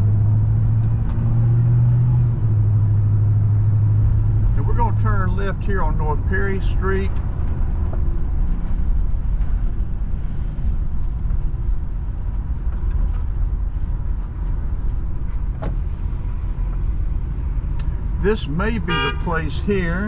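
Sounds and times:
car engine and tyres rumbling: 0.0 - 20.0.

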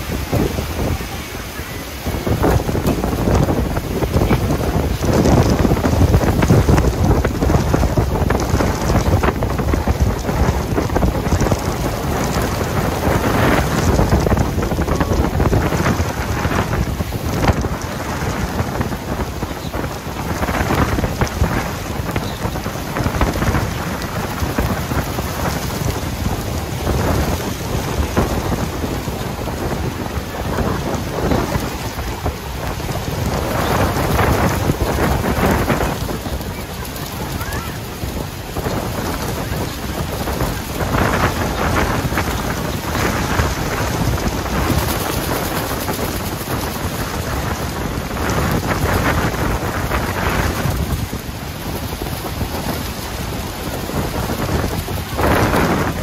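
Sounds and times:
waterfall roaring: 0.0 - 56.0.

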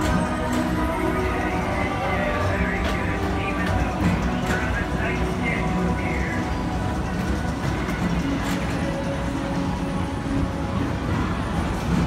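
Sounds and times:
ride cars rumbling on track: 0.0 - 12.0
ride music: 0.0 - 12.0.

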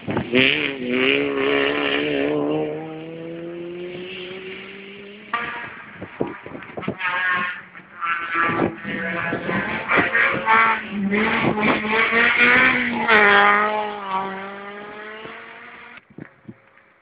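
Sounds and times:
rally car accelerating away: 0.0 - 16.0
rally car engine revving: 0.0 - 16.0.

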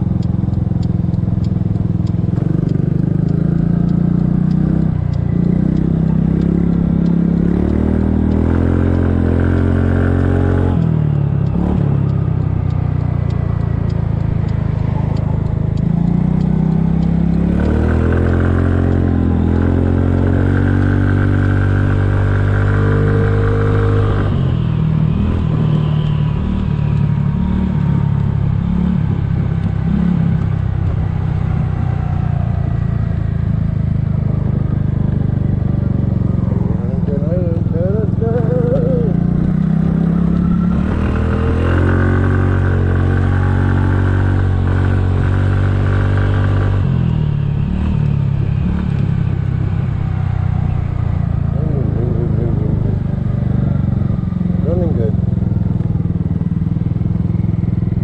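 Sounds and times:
scooter engine accelerating: 0.0 - 58.0.

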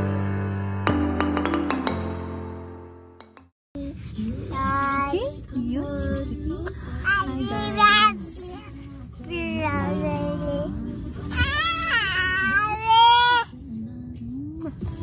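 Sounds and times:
music: 0.0 - 3.5, 6.0 - 15.0
woman and toddler singing: 3.9 - 15.0.

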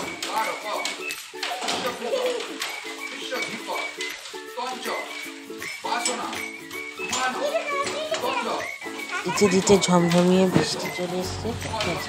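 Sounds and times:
children talking: 0.0 - 12.0
music: 0.0 - 12.0
voices talking over one another: 5.2 - 12.0.

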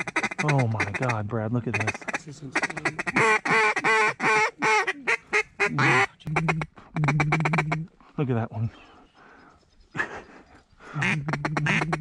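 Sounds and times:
duck call quacks: 0.0 - 7.9, 11.0 - 12.0.

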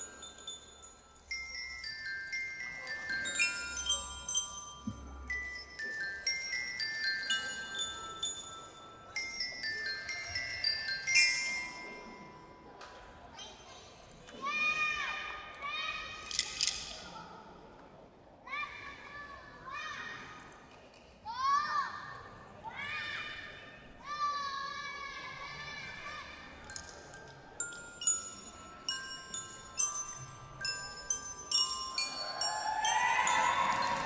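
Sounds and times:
glockenspiel notes ringing: 0.0 - 12.8, 26.6 - 34.0
children shouting: 32.0 - 34.0.

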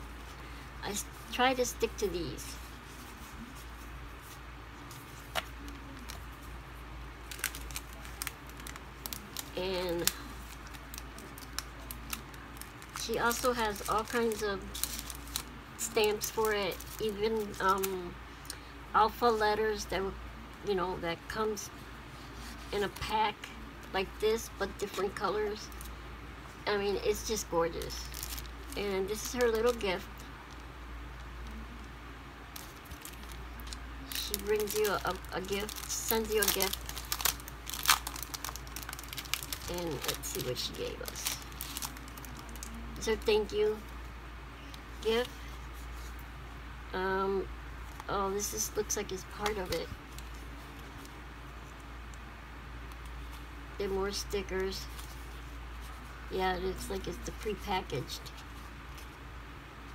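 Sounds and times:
cellophane packets rustling: 7.2 - 17.9, 27.1 - 30.6, 32.5 - 43.9.

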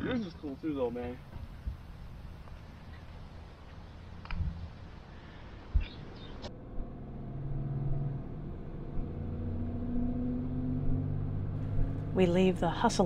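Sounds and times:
vehicle engine and road noise: 0.0 - 13.0.

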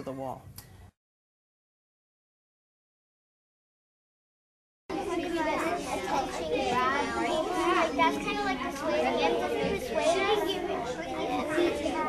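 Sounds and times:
children chattering: 4.9 - 12.0.

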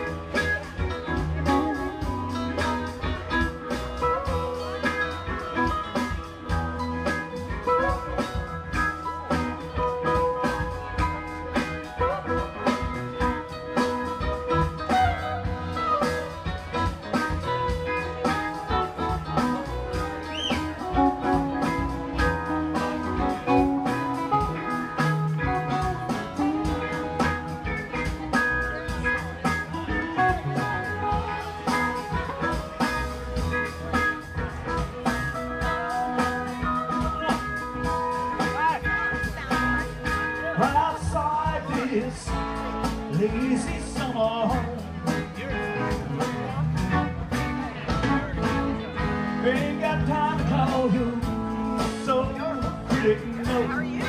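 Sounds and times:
drum kit beat: 0.0 - 54.0
electric guitar lead: 0.0 - 54.0
keyboard: 0.0 - 54.0
rhythm guitar: 0.0 - 54.0.

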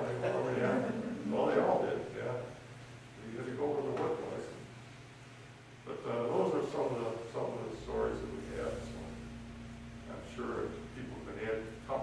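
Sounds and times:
man speaking: 0.0 - 2.6, 3.2 - 4.7, 5.9 - 9.3, 10.0 - 12.0.

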